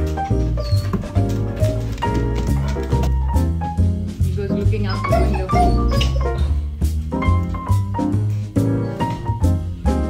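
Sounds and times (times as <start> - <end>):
background music: 0.0 - 10.0
dog whining: 5.1 - 6.5.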